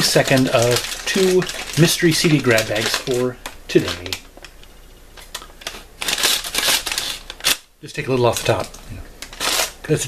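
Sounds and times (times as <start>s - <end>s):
paper bag rustling and crinkling: 0.0s - 4.3s, 5.2s - 7.6s, 8.2s - 10.0s.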